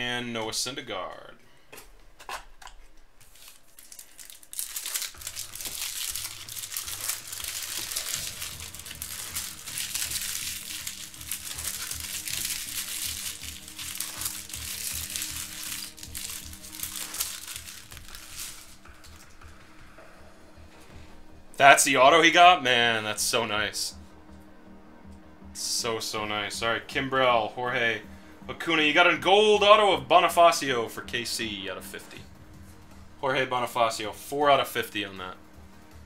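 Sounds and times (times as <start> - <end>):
faint background music: 0.0 - 36.0
cards being handled: 1.7 - 19.3
foil wrappers crinkling: 2.2 - 19.4.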